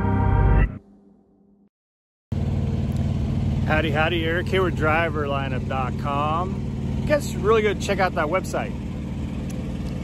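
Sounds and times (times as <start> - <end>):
diesel engine running: 2.3 - 10.0.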